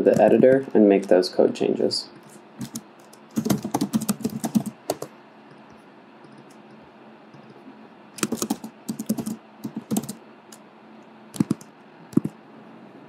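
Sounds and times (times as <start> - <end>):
computer keyboard typing: 0.0 - 0.7, 2.6 - 5.1, 8.2 - 10.2, 11.3 - 12.4.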